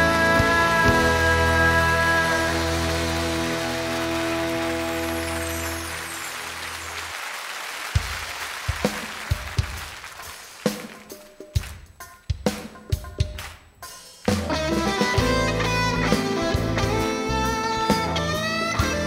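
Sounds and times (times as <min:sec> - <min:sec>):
live band held chord: 0:00.0 - 0:07.2, 0:14.2 - 0:19.0
audience applause: 0:00.0 - 0:11.8.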